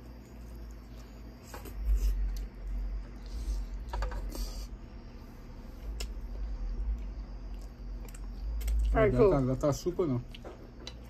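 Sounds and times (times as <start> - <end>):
chewing and mouth smacks: 7.4 - 9.0, 10.2 - 11.0.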